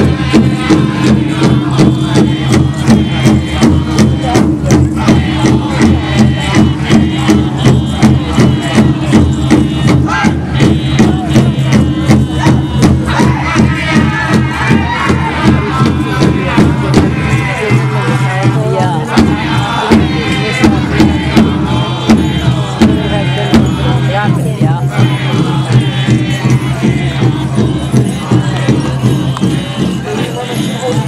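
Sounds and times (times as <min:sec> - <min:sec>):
large drum steady beat: 0:00.0 - 0:31.0
singers chanting in high voices: 0:00.0 - 0:31.0.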